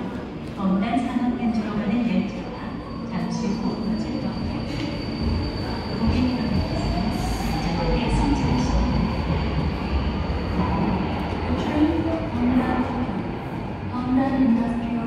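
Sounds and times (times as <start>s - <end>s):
train rumbling in tunnel: 0.0s - 15.0s.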